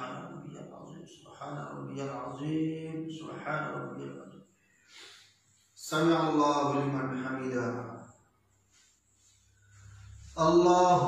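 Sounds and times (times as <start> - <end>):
man chanting prayer: 0.0 - 4.4, 5.8 - 8.1, 10.1 - 11.0.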